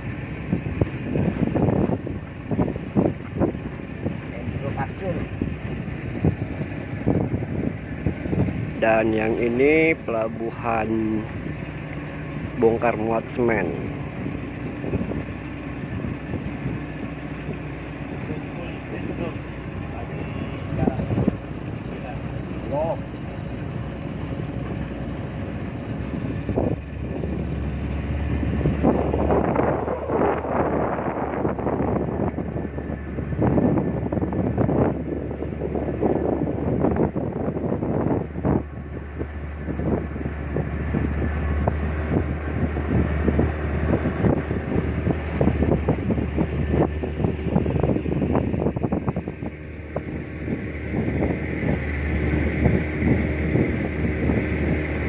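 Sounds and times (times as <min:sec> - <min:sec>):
outboard motor droning: 0:00.0 - 0:55.0
wind buffeting microphone: 0:00.0 - 0:55.0.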